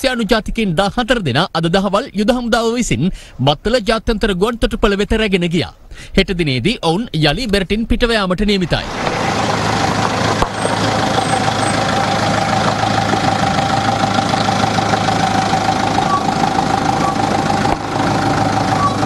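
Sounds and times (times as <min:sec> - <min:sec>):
vehicle engine idling: 0:08.6 - 0:19.0.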